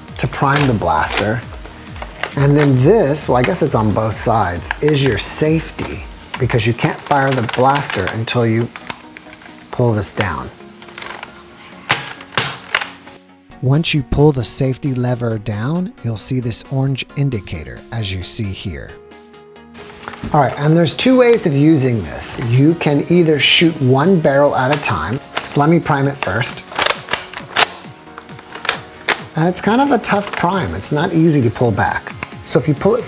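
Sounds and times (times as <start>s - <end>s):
music: 0.0s - 33.0s
sharp plastic clicks: 7.1s - 9.5s, 11.9s - 13.0s, 24.7s - 29.4s.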